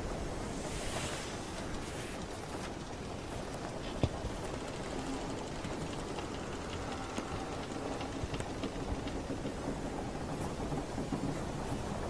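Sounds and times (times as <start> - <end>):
low rush of sea: 0.0 - 12.0.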